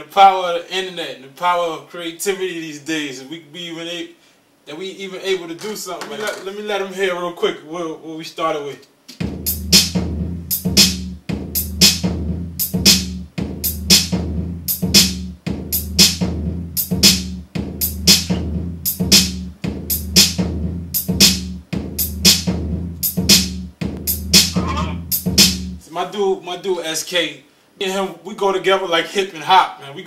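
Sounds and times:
drum machine snare and hi-hat: 0:09.1 - 0:25.9
sustained bass line: 0:09.2 - 0:25.8.

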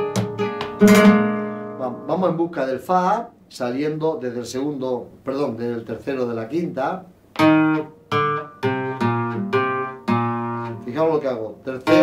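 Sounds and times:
guitar single notes ringing: 0:00.2 - 0:02.5, 0:07.4 - 0:10.9, 0:11.8 - 0:12.0.

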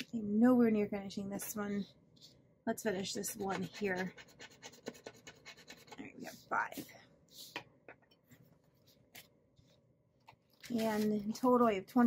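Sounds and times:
scratching a scratch-off card: 0:03.1 - 0:06.9.

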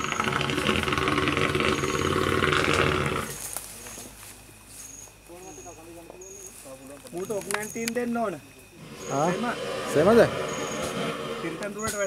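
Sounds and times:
elephant roaring: 0:00.0 - 0:03.4, 0:08.8 - 0:11.9.

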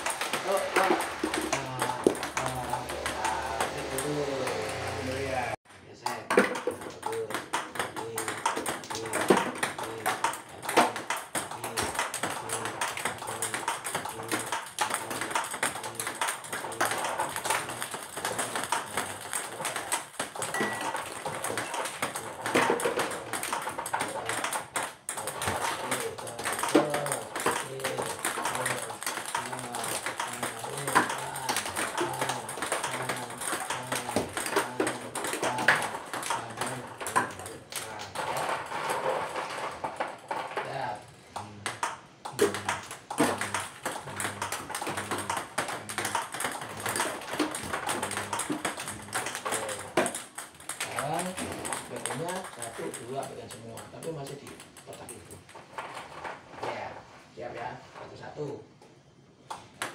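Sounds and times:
table tennis ball taps: 0:00.0 - 0:05.0, 0:06.2 - 0:38.0, 0:41.3 - 0:54.8.

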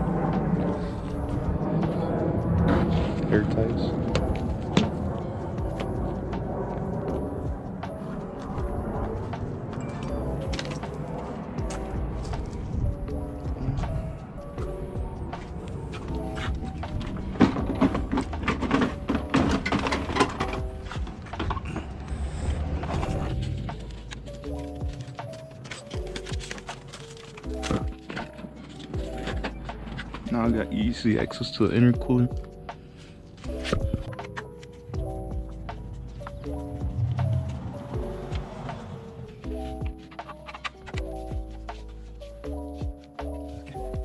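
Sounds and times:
background music: 0:00.0 - 0:44.0.

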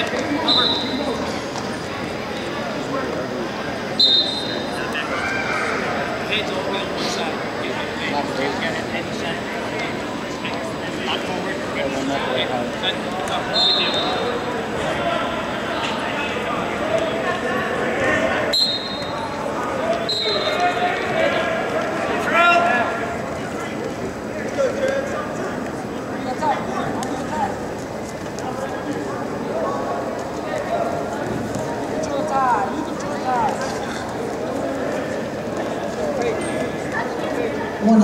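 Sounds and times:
spectators and coaches shouting: 0:04.0 - 0:06.4.

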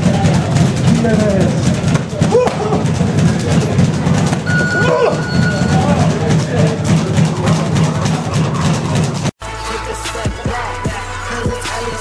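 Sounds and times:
quick thuds: 0:00.0 - 0:09.3
voices: 0:00.0 - 0:09.3
steady electronic beep: 0:04.4 - 0:06.3.

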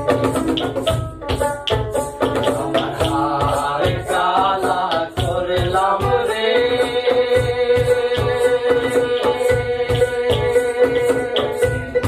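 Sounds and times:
hand drum beats: 0:00.0 - 0:12.0
person singing folk song: 0:02.4 - 0:12.0.

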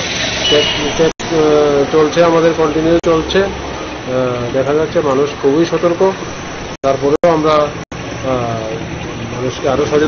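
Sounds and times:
passing motor vehicle: 0:00.0 - 0:10.0.

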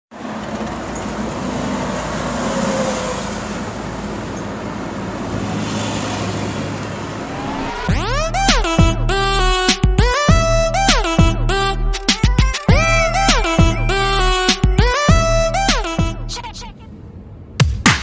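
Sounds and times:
car engine and heater blower: 0:00.2 - 0:09.3
rising electronic sweep: 0:07.1 - 0:09.8.

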